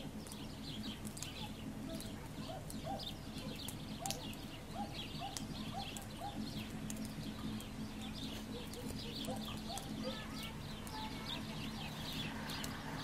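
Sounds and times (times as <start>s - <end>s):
songbirds chirping: 0.0s - 13.0s
steady low hum: 0.0s - 13.0s.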